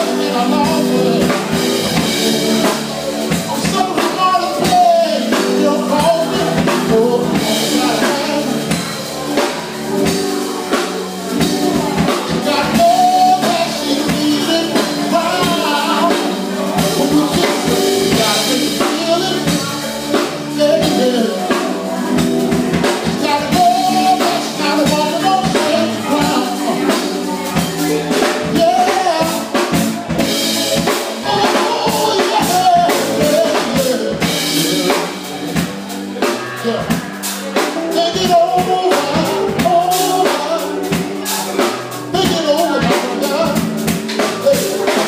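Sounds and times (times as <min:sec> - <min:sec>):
bass line: 0:00.0 - 0:45.0
person singing: 0:00.0 - 0:45.0
steady drum beat: 0:00.0 - 0:45.0.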